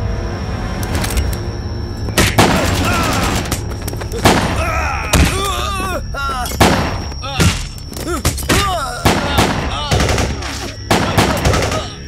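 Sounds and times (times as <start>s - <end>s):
pistol gunshots: 4.2s - 4.6s, 6.6s - 7.6s, 9.0s - 12.0s.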